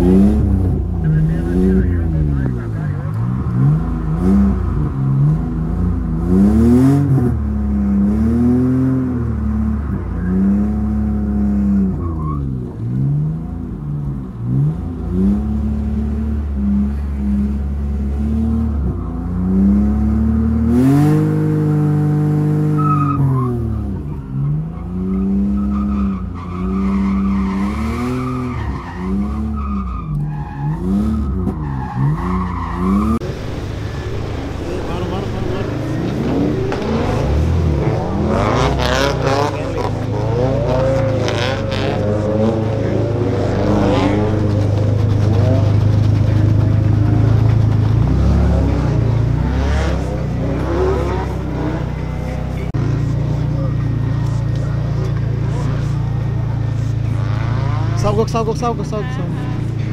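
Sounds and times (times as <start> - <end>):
car engine revving: 0.0 - 59.9
tyres squealing and skidding: 9.8 - 13.4, 22.5 - 59.9.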